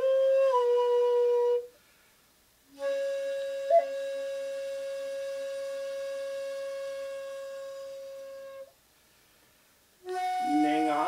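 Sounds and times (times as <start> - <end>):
shakuhachi long note: 2.8 - 8.7, 10.0 - 11.0.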